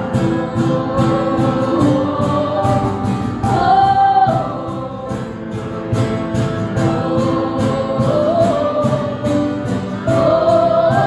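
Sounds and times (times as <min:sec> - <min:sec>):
acoustic guitar: 0:00.0 - 0:11.0
keyboard: 0:00.0 - 0:11.0
percussion beat: 0:00.0 - 0:11.0
women singing: 0:00.0 - 0:11.0.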